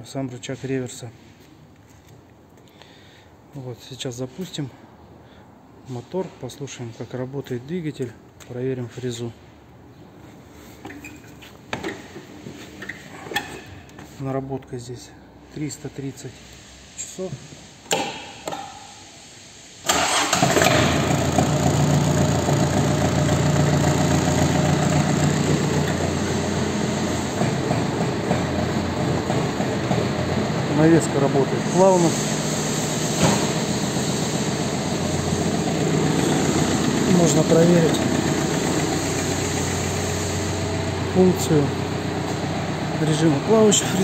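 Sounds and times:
diesel tractor engine starting and idling: 18.6s - 44.0s.

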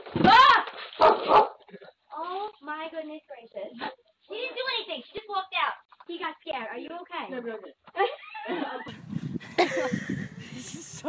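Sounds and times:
dog barking loudly: 1.0s - 1.6s
person talking: 10.4s - 11.0s.

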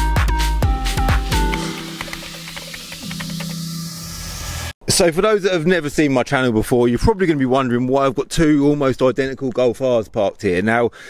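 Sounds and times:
electronic music beat: 0.0s - 4.7s
sustained low tones: 1.4s - 4.8s
hiss: 1.6s - 4.7s.

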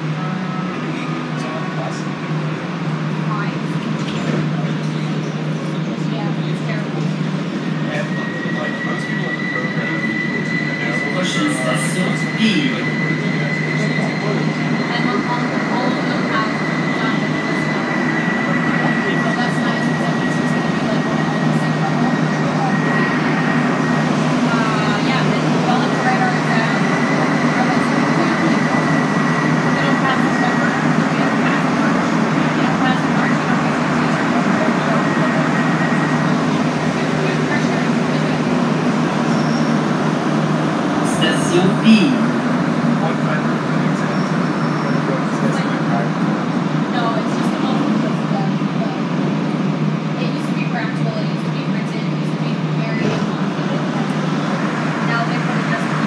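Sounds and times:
high-pitched whine: 0.0s - 56.0s
train running noise: 0.0s - 56.0s.

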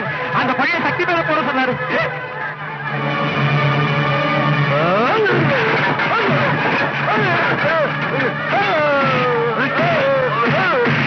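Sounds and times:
men crying out and shouting: 4.4s - 11.0s.

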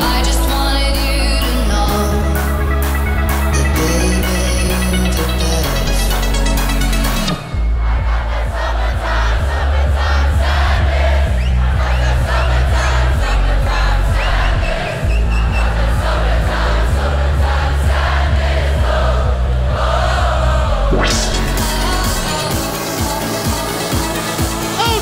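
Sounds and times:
electronic dance music: 0.0s - 11.1s, 20.9s - 25.0s
crowd cheering and shouting: 7.3s - 25.0s.

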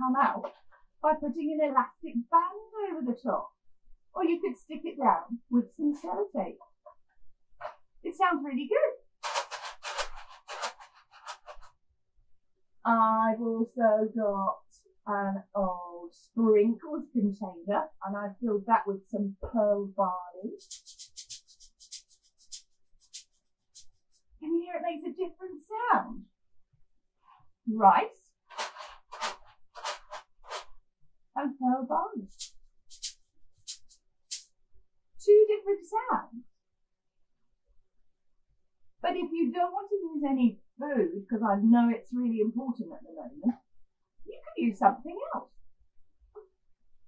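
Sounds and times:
rice shaker rattling: 20.6s - 24.2s, 32.3s - 34.4s.

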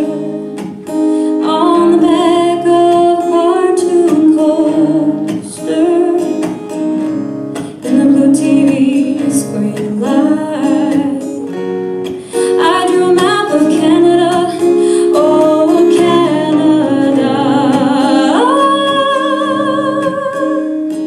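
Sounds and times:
woman singing with vibrato: 0.0s - 6.5s, 7.6s - 11.6s, 12.3s - 21.0s
acoustic guitar strumming: 0.0s - 21.0s.

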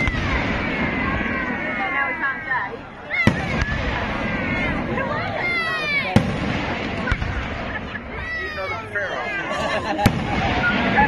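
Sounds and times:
fireworks crackle and rumble: 0.0s - 11.0s
fireworks sharp bangs: 0.0s - 11.0s.

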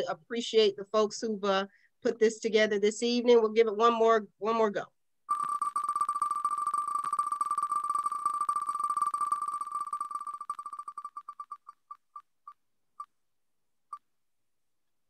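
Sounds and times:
electronic spinner ticks: 5.3s - 12.2s.

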